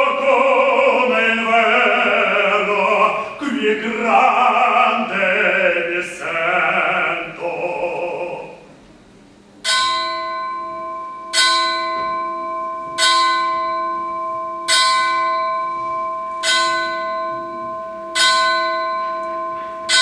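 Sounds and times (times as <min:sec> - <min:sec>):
bell tolling: 0:09.6 - 0:20.0.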